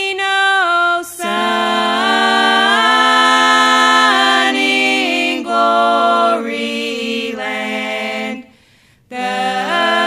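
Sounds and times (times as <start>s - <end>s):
women singing gospel in harmony: 0.0s - 10.0s.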